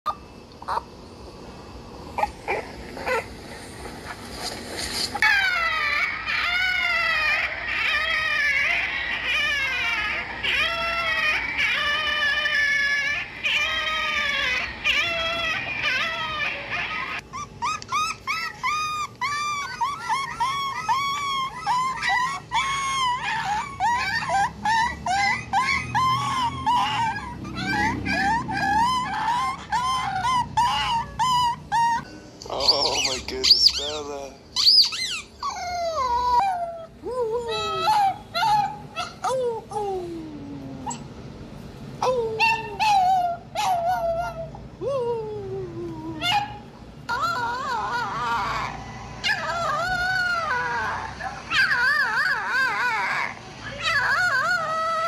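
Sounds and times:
dog whimpering and yelping: 0:00.1 - 0:01.0, 0:02.1 - 0:03.4, 0:04.1 - 0:41.2, 0:42.0 - 0:55.0.

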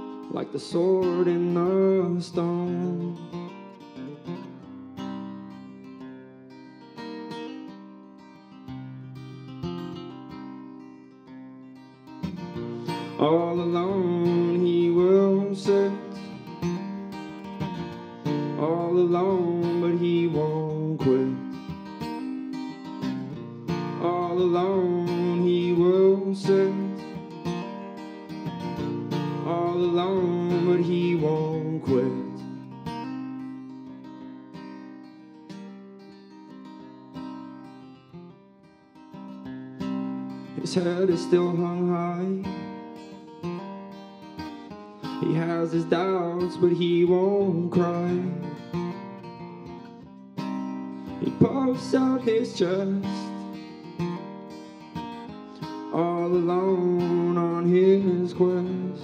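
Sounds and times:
man singing: 0:00.0 - 0:04.7, 0:12.5 - 0:21.9, 0:23.0 - 0:28.0, 0:28.8 - 0:32.8, 0:40.4 - 0:43.0, 0:45.0 - 0:49.2, 0:51.1 - 0:54.2, 0:55.6 - 0:59.0
acoustic guitar: 0:00.0 - 0:59.0.

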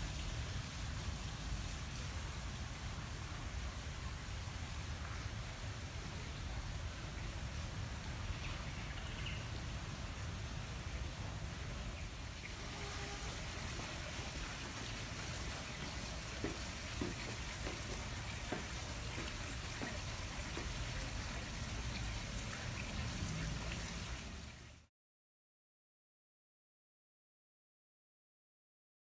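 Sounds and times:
water drips and small splashes: 0:00.0 - 0:24.9
water trickling in a pond: 0:00.0 - 0:24.9.

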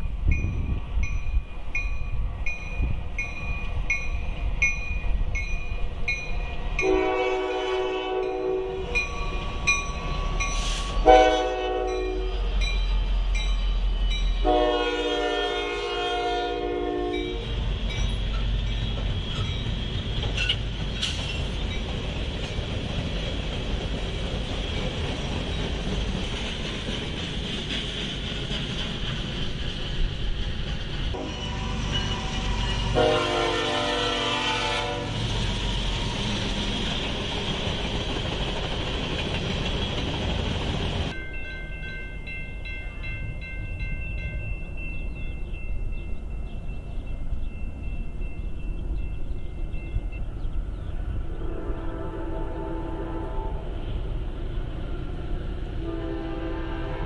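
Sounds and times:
crossing bell dinging: 0:00.0 - 0:15.3, 0:16.4 - 0:20.7, 0:31.2 - 0:34.1, 0:41.0 - 0:50.5
train rumbling past: 0:00.0 - 0:57.0
locomotive horn blasts: 0:06.8 - 0:09.0, 0:10.6 - 0:12.5, 0:14.4 - 0:17.6, 0:31.2 - 0:35.2, 0:51.4 - 0:53.7, 0:55.8 - 0:57.0.

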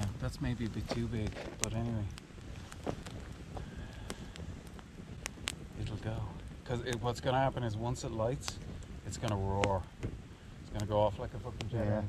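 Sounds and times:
campfire crackling and popping: 0:00.0 - 0:12.0
low fire rumble: 0:00.0 - 0:12.0.

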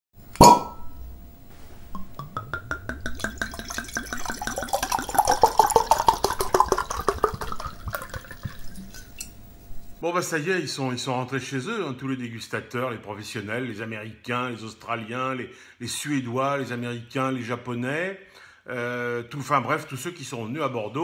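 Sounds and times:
glass struck and ringing: 0:00.4 - 0:01.1, 0:02.0 - 0:04.8
liquid glugging from bottle: 0:01.9 - 0:09.3.

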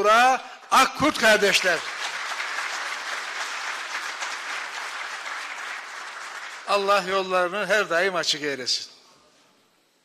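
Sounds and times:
audience applauding: 0:01.2 - 0:07.3.

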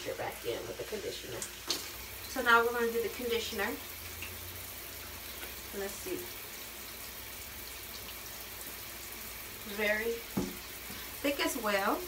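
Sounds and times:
shower water running: 0:00.0 - 0:12.0.

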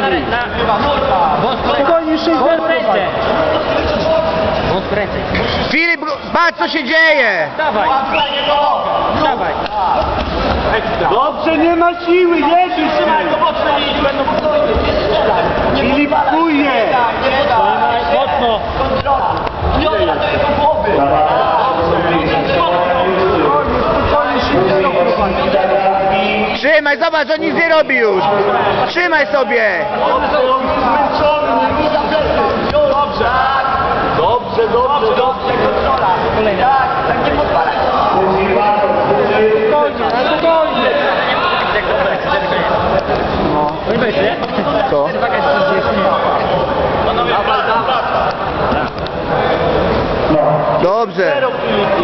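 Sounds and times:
people talking over one another: 0:00.0 - 0:52.0.

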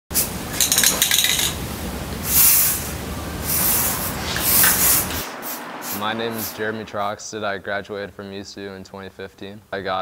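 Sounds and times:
spray-paint can hissing: 0:02.2 - 0:06.1.

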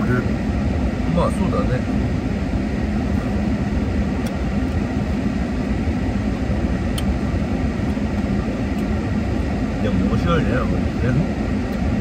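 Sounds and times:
car engine rumble inside cabin: 0:00.0 - 0:12.0.

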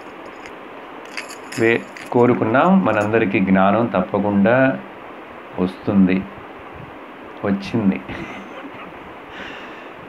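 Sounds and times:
faint room hiss: 0:00.0 - 0:10.0
man speaking into a microphone: 0:01.6 - 0:04.8, 0:07.4 - 0:08.2.

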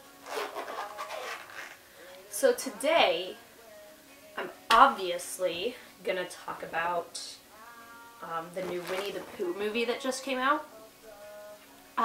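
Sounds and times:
speaker being handled rustling: 0:08.6 - 0:09.4.

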